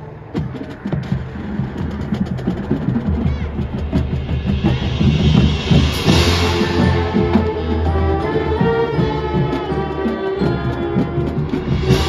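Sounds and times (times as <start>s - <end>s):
marching band playing: 0.0s - 12.0s
drum and mallet strikes: 2.8s - 12.0s.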